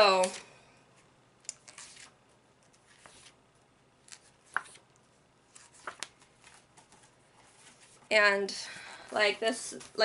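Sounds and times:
book pages rustling: 0:01.6 - 0:03.4, 0:04.0 - 0:04.8, 0:05.5 - 0:08.1.

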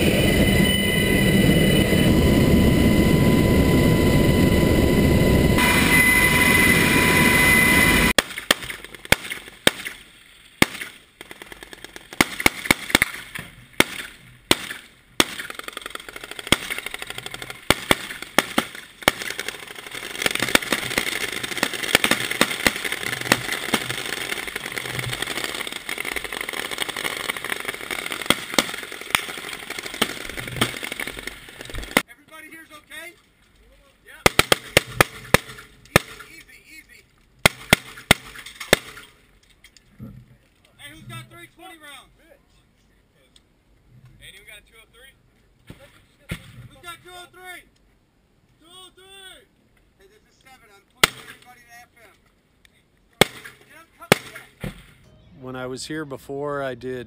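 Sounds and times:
helicopter cabin noise with whine: 0:00.0 - 0:08.1
gunshot cracks: 0:08.2 - 0:10.0, 0:10.6 - 0:11.0, 0:12.2 - 0:15.6, 0:37.4 - 0:39.2, 0:53.2 - 0:55.0.

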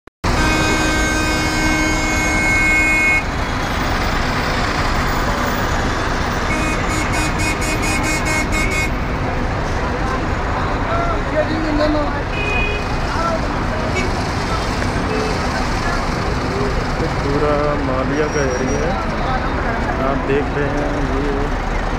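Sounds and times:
long horn blast: 0:00.2 - 0:03.3, 0:06.5 - 0:09.0
buses and cars running: 0:00.2 - 0:21.9
crowd voices: 0:03.5 - 0:21.9.

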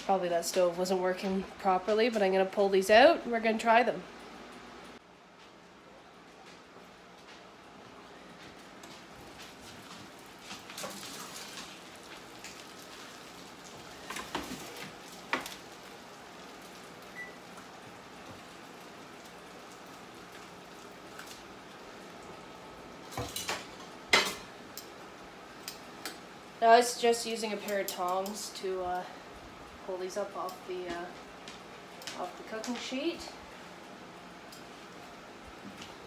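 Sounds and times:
bacon sizzling: 0:09.0 - 0:36.0.

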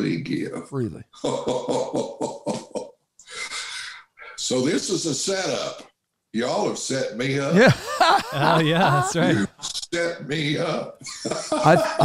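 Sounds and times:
man laughing heartily: 0:01.3 - 0:02.9, 0:07.5 - 0:09.5, 0:11.2 - 0:12.0.

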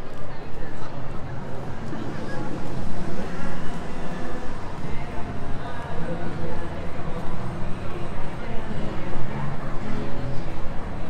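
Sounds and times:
indistinct voices of passers-by: 0:00.0 - 0:11.0.

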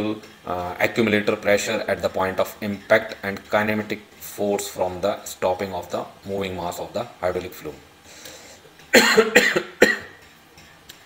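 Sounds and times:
man coughing: 0:08.9 - 0:10.2.

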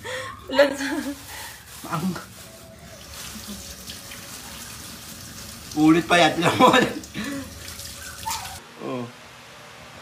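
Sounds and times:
water running from a tap: 0:03.0 - 0:08.6.

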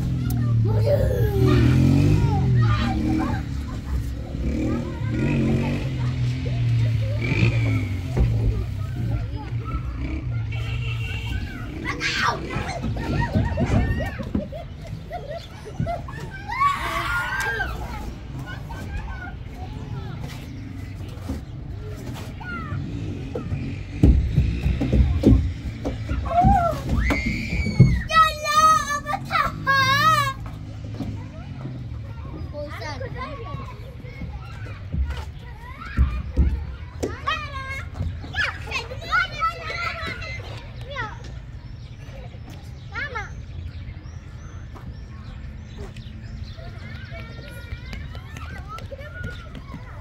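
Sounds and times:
young children's voices: 0:00.0 - 0:50.0.

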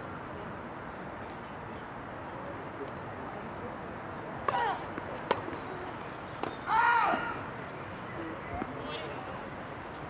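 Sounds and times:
racket hitting tennis ball: 0:04.5 - 0:05.6.

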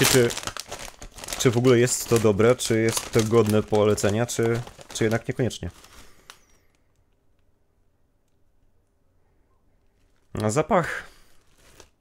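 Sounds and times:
crisp bag crinkle: 0:00.0 - 0:06.9, 0:11.2 - 0:12.0.

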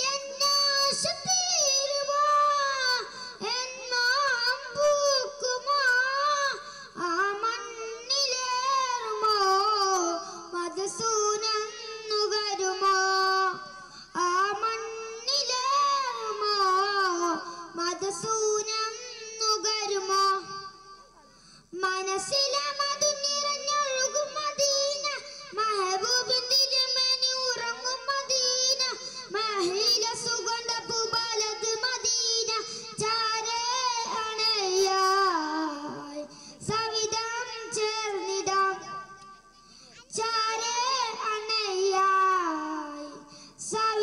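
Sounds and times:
boy singing through microphone: 0:00.0 - 0:44.0.

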